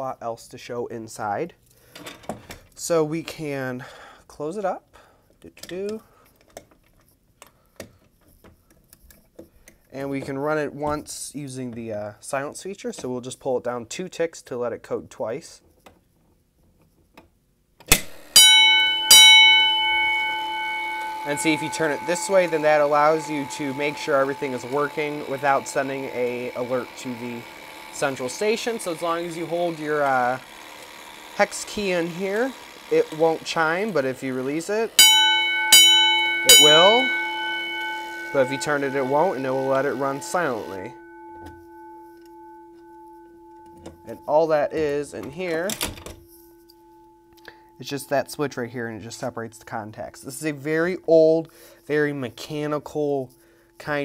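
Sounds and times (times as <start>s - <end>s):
fire alarm bell ringing: 18.0s - 49.8s, 52.6s - 54.0s.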